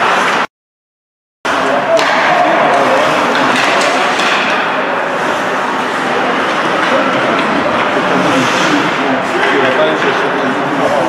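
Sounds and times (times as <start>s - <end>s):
spectator chatter: 1.5s - 11.0s
sticks and puck clacking: 1.9s - 4.8s, 6.4s - 10.3s.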